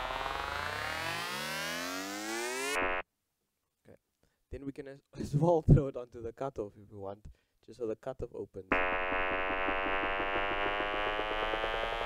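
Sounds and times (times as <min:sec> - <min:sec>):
synthesizer riser gliding upward: 0:00.0 - 0:03.0, 0:08.7 - 0:12.0.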